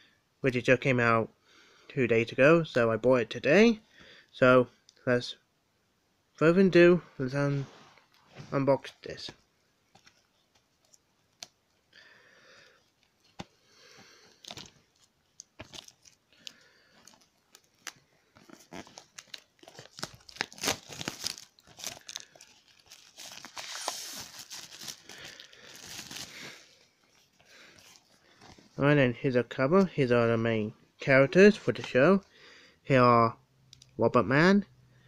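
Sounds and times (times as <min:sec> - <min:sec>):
plastic wrap tearing and crinkling: 0:14.3 - 0:28.8.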